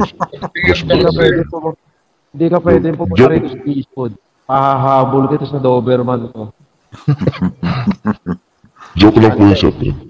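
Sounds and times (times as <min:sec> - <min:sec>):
man imitating dog barking: 0:00.0 - 0:01.5, 0:07.0 - 0:10.0.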